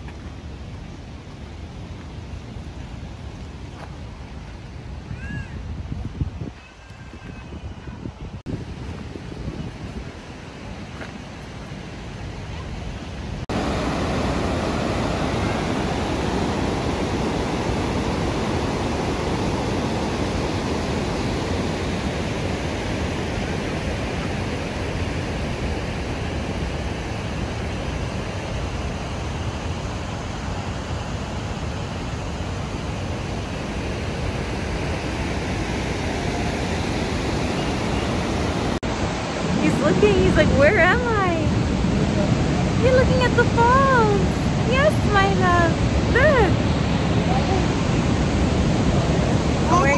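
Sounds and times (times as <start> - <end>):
waterfall rushing: 10.1 - 49.9.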